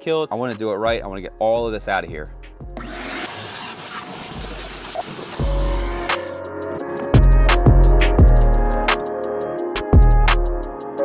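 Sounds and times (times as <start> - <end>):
background music: 0.0 - 11.0
shop vacuum sucking water: 2.8 - 6.4.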